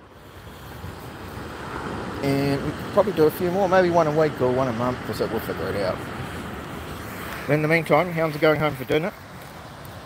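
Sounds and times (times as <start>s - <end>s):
ocean surf: 0.0s - 10.0s.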